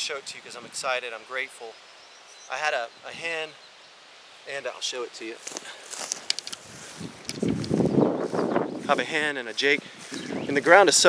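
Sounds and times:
handling and wind rustling: 0:05.2 - 0:11.0
microphone handling clicks: 0:05.5 - 0:08.6.

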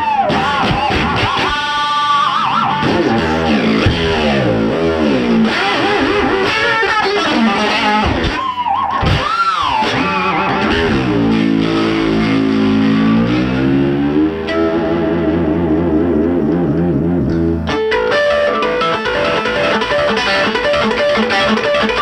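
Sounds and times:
overdriven electric guitar: 0:00.0 - 0:22.0.

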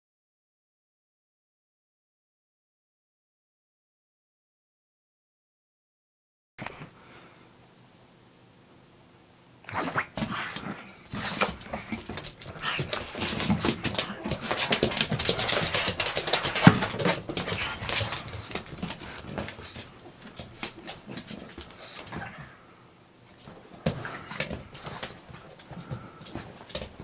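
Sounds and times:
dog making excited vocal noises: 0:09.8 - 0:19.9.

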